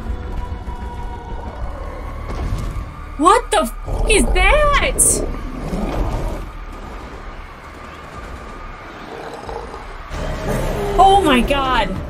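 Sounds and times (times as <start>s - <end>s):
low rumble of fire: 0.0s - 3.2s, 5.1s - 11.1s.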